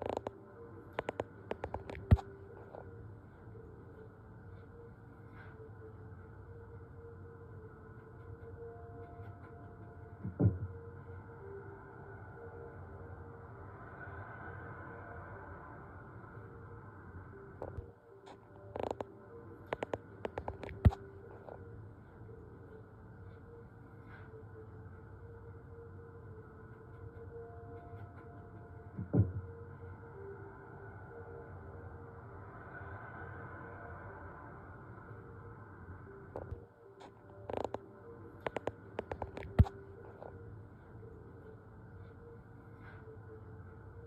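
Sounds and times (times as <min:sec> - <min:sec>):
faint steady hum: 0:00.0 - 0:44.0.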